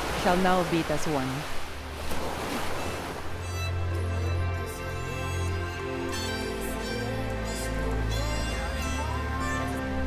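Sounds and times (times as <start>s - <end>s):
ocean surf washing ashore: 0.0s - 3.4s
soft background music: 0.2s - 10.0s.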